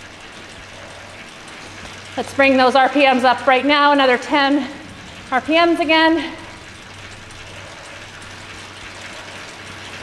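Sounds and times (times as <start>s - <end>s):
bike trainer whirring: 0.0s - 10.0s
low electrical hum: 0.0s - 10.0s.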